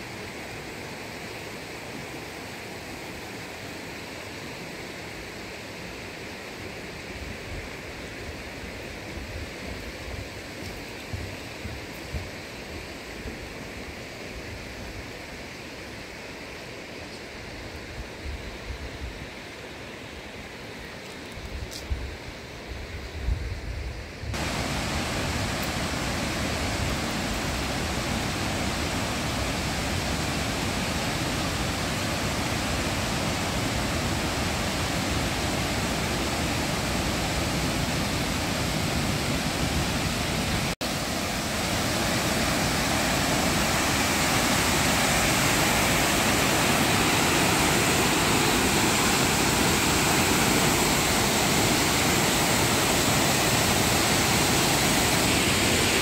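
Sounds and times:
river water flowing over rocks: 0:24.4 - 0:56.0.

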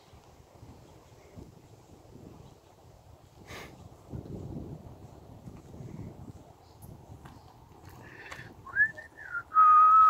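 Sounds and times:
person whistling: 0:08.7 - 0:10.0.

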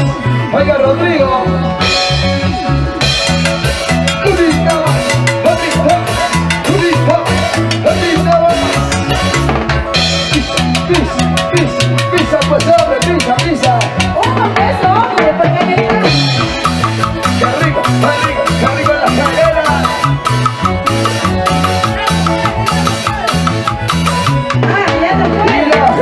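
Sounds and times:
live band playing dance music: 0:00.0 - 0:26.0.

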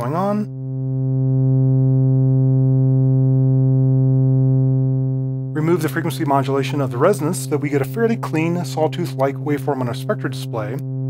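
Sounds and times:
low synthesizer note: 0:00.0 - 0:11.0.

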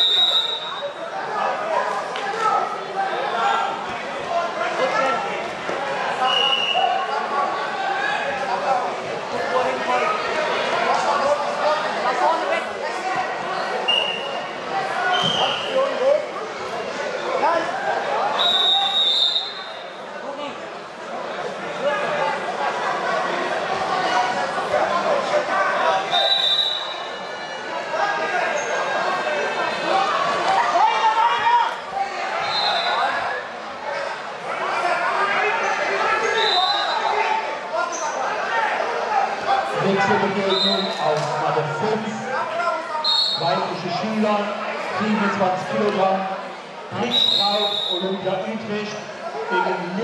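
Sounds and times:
referee's whistle blasts: 0:00.0 - 0:01.0, 0:06.2 - 0:06.9, 0:18.4 - 0:19.9, 0:26.1 - 0:27.2, 0:32.4 - 0:33.0, 0:36.2 - 0:37.1, 0:40.4 - 0:41.0, 0:43.0 - 0:43.7, 0:47.0 - 0:48.2
crowd chattering and calling: 0:00.0 - 0:50.0
voices echoing in sports hall: 0:00.0 - 0:50.0.

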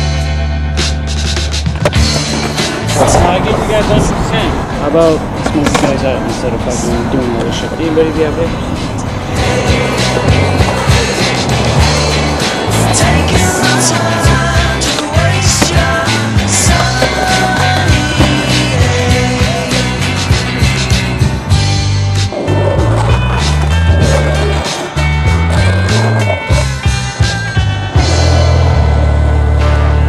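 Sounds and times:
background music with bass line: 0:00.0 - 0:30.0
skateboard wheels rolling on asphalt: 0:01.3 - 0:30.0
skateboard clacks: 0:05.4 - 0:06.0, 0:09.3 - 0:20.9, 0:22.4 - 0:27.3.

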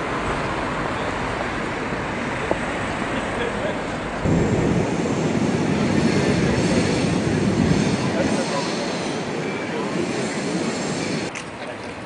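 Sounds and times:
city street traffic rumble: 0:00.0 - 0:12.0
faint voices: 0:03.1 - 0:12.0.

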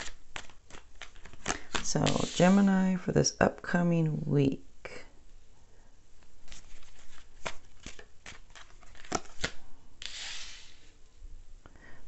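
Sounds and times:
cards snapping and tapping: 0:00.0 - 0:02.2, 0:07.2 - 0:10.2
card sliding on table: 0:02.0 - 0:02.7, 0:10.0 - 0:10.9.

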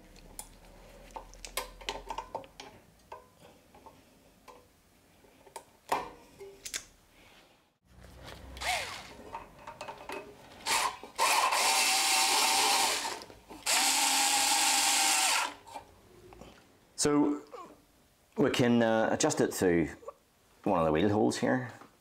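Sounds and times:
cordless drill whining: 0:08.6 - 0:09.2, 0:10.6 - 0:15.6.

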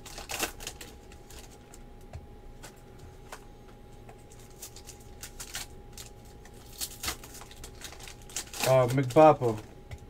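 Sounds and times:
foil pack ripping: 0:00.0 - 0:01.6, 0:04.4 - 0:09.6
foil crinkling: 0:00.0 - 0:01.8, 0:04.3 - 0:09.7
man talking: 0:08.6 - 0:09.6.

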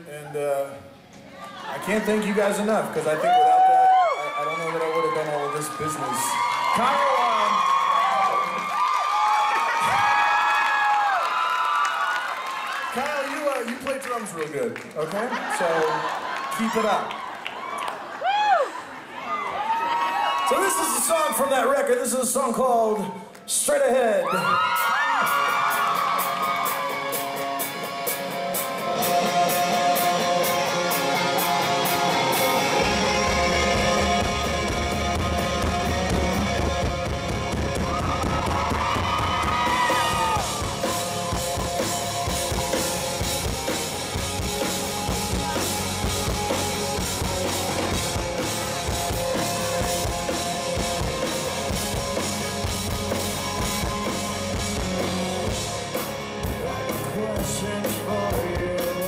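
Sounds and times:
rock band playing guitars and drums: 0:24.6 - 0:59.0.

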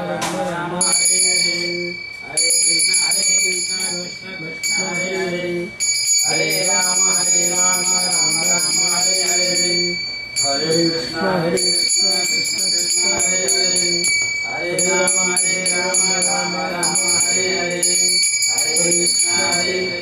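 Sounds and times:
people chanting: 0:00.0 - 0:20.0
hand bell ringing rapidly: 0:05.8 - 0:11.0, 0:11.6 - 0:20.0.

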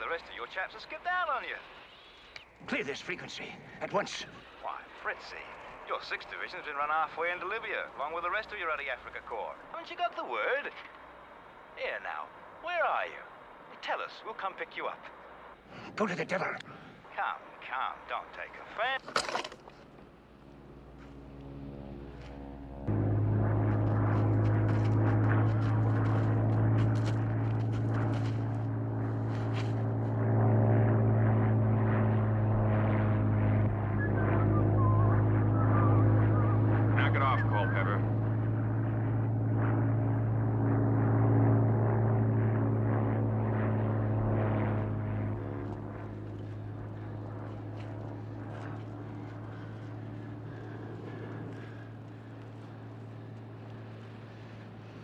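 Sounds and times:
aircraft piston engine droning: 0:00.0 - 0:55.0.

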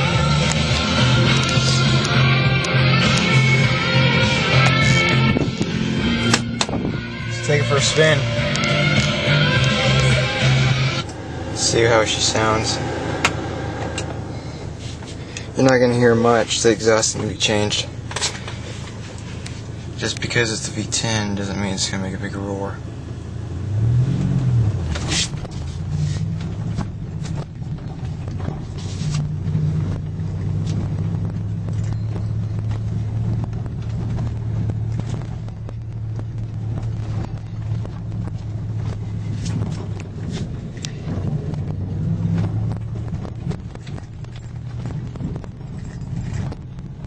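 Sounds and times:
truck engine running: 0:00.0 - 0:47.0.

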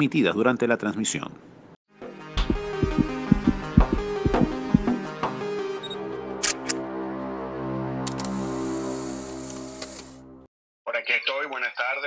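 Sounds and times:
background music: 0:02.0 - 0:10.5.

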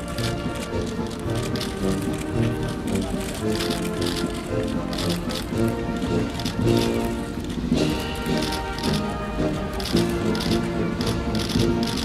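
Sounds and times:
military band with brass and drums: 0:00.0 - 0:12.0.

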